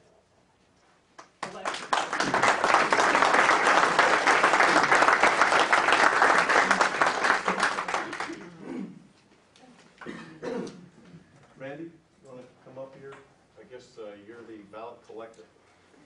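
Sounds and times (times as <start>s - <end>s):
audience applauding: 1.4s - 8.6s.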